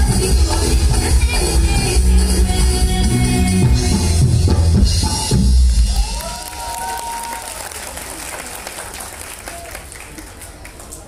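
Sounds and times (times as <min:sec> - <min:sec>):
person cheering: 0:05.9 - 0:07.6
audience applauding: 0:05.9 - 0:11.0.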